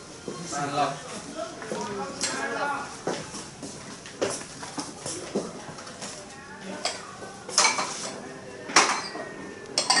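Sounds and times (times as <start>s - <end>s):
dishes and cutlery clattering: 6.8s - 10.0s.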